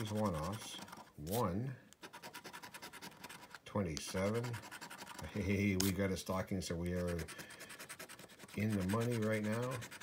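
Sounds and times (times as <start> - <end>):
person speaking: 0.0 - 2.2, 3.2 - 10.0
scratching lottery ticket: 0.0 - 6.1, 6.8 - 10.0.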